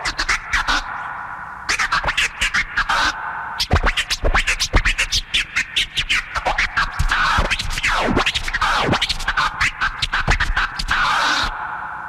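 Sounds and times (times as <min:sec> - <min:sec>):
turntable scratching: 0:00.0 - 0:00.9, 0:01.7 - 0:11.5.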